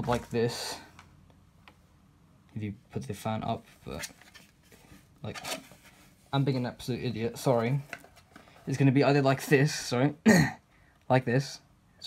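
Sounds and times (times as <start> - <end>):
person speaking: 0.0 - 1.0, 2.5 - 4.3, 5.2 - 11.6.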